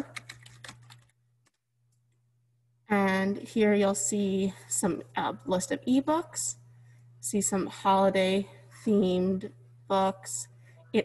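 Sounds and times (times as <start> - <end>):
keyboard typing: 0.0 - 1.6.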